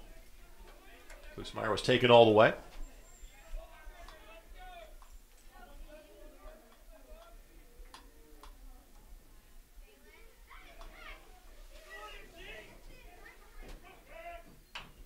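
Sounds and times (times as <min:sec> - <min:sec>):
distant voices calling and chattering: 0:02.3 - 0:15.0.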